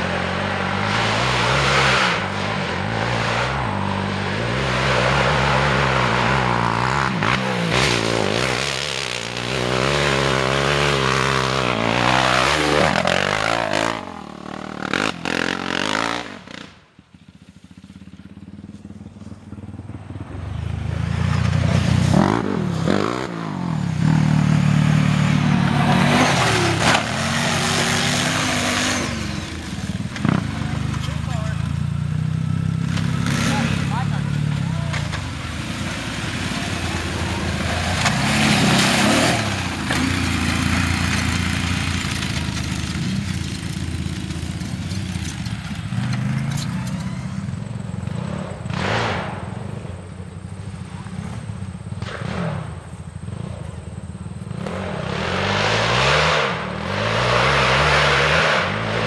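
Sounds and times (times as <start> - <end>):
quad engine revving: 0.0 - 16.8, 20.4 - 49.9, 54.4 - 59.0.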